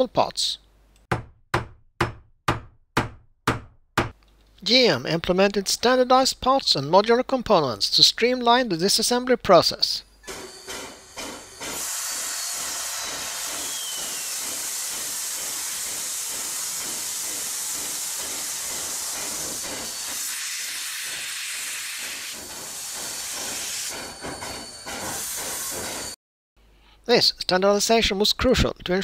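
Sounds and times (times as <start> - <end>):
steam hissing: 10.3 - 26.2.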